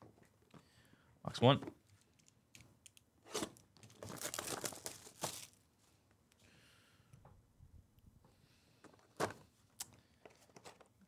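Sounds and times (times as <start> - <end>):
plastic shrink-wrap tearing: 3.9 - 5.6.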